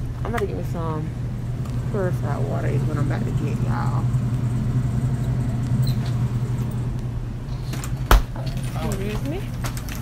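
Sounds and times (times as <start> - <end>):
supermarket background hum: 0.0 - 10.0.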